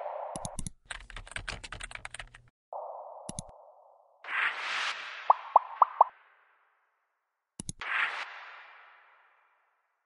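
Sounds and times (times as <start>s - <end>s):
computer keyboard typing: 0.4s - 2.5s.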